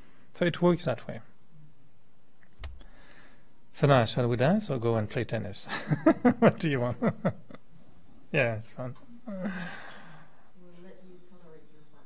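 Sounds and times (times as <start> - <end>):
person sighing: 9.2 - 10.4.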